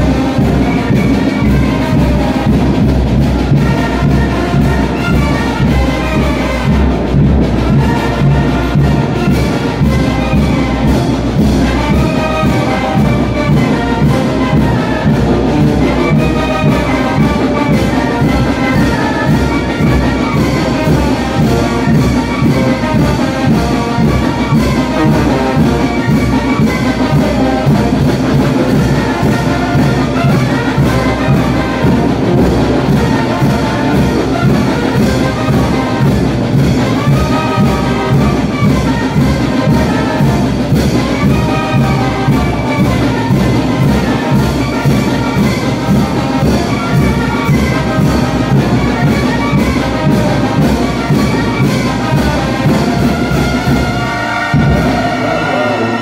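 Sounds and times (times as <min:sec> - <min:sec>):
brass band playing: 0:00.0 - 0:56.0.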